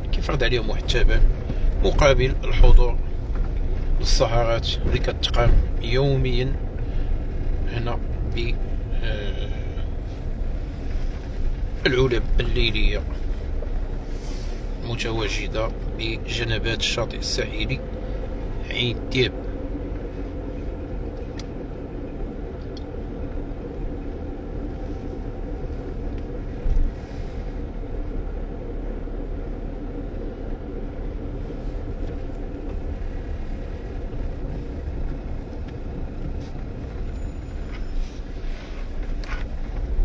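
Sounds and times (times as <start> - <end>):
car engine and tyre rumble: 0.0 - 40.0.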